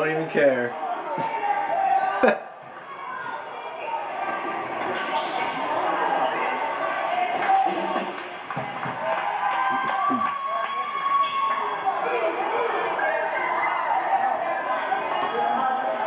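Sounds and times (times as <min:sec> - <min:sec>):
chatter of spectators: 0:00.0 - 0:16.0.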